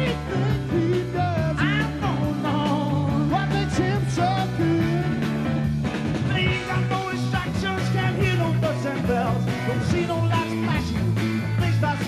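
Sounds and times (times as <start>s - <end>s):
man singing lead vocals: 0.0s - 5.4s, 6.2s - 12.0s
live rock band playing: 0.0s - 12.0s.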